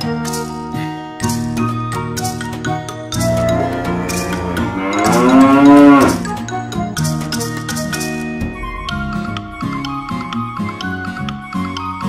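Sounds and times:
cow mooing: 3.2 - 6.3
light music jingle: 3.2 - 7.0.

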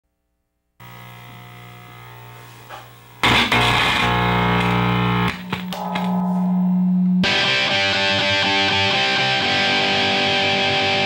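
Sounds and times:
distorted electric guitar chords: 3.1 - 11.0.

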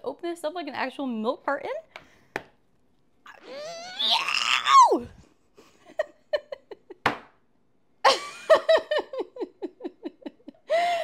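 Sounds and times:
woman laughing: 5.7 - 7.0, 8.0 - 11.0.

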